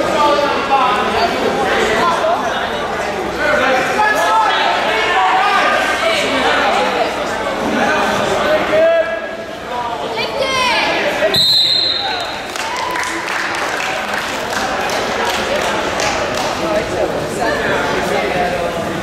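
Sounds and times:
referee's whistle blast: 11.3 - 12.3.

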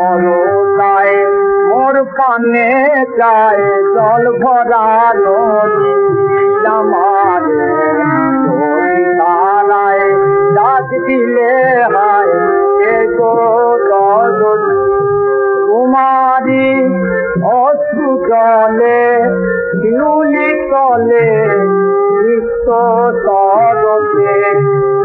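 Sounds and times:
man singing ornamented melody: 0.0 - 25.0.

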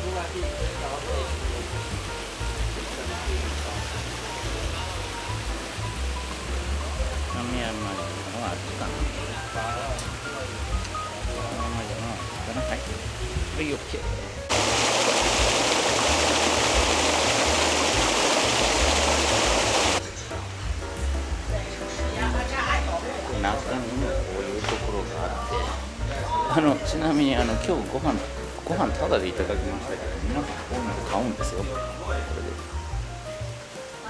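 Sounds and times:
loud steady rushing noise: 14.4 - 20.0.

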